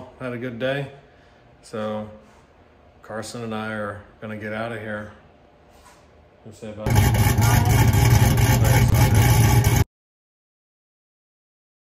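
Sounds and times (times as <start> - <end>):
electric fan running: 6.7 - 9.9.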